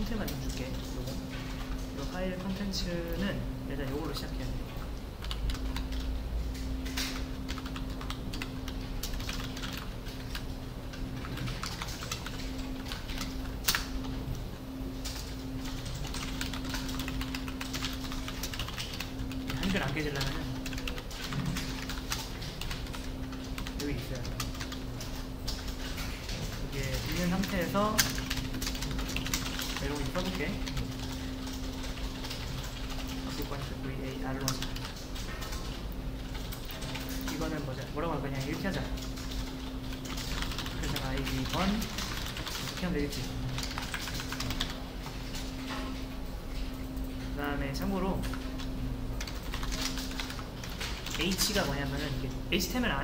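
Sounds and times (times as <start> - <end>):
steady low hum: 0.0 - 53.0
typing on computer keyboard: 5.2 - 14.2, 15.0 - 37.7, 38.3 - 45.8, 48.1 - 52.2.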